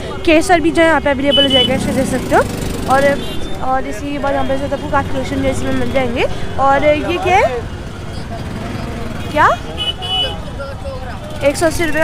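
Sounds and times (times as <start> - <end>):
street market background noise: 0.0 - 12.0
vehicle horn toot: 1.3 - 1.9, 9.4 - 10.5.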